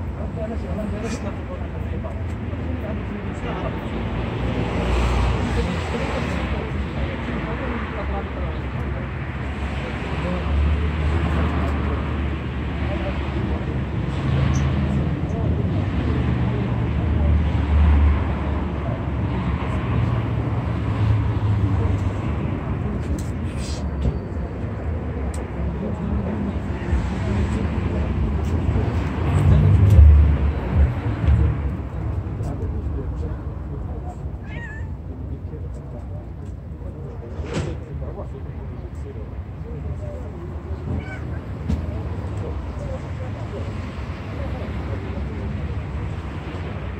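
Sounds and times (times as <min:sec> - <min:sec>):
cats meowing: 0:34.4 - 0:35.1, 0:40.8 - 0:41.5.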